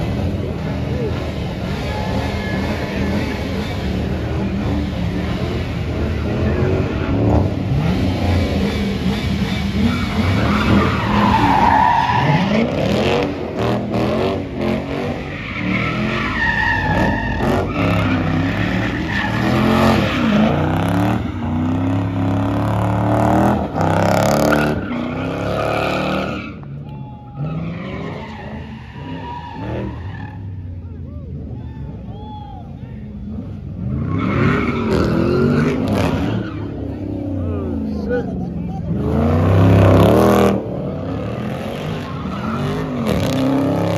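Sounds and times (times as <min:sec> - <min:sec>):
car engine revving: 0:00.0 - 0:26.6, 0:33.2 - 0:43.9
tyres squealing on asphalt: 0:00.0 - 0:43.9.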